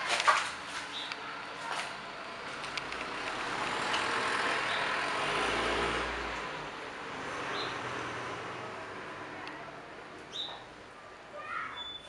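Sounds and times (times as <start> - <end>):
road vehicle passing: 0.6 - 10.8.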